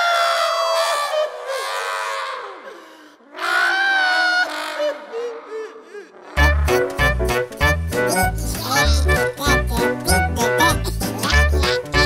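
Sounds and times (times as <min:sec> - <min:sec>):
cartoon character screaming: 0:03.4 - 0:05.0.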